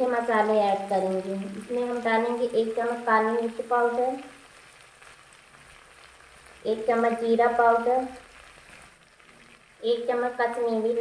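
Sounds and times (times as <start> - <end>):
woman speaking: 0.0 - 4.3, 6.7 - 8.2, 9.8 - 11.0
food sizzling in oil: 0.0 - 11.0.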